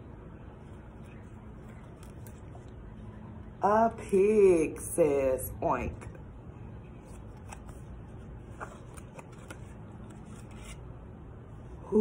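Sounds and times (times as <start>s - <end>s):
low steady hum: 0.0s - 12.0s
book pages rustling and clicking: 0.6s - 2.8s, 7.0s - 10.9s.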